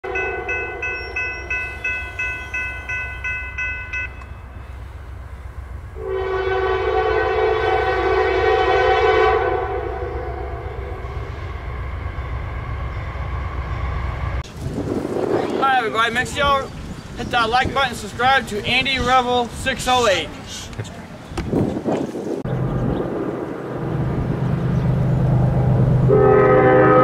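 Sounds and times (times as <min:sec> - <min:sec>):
locomotive air horn blast: 0:00.0 - 0:02.3, 0:06.0 - 0:11.8, 0:26.0 - 0:27.0
crossing bell ringing: 0:00.0 - 0:04.8
low rumble: 0:22.4 - 0:26.9.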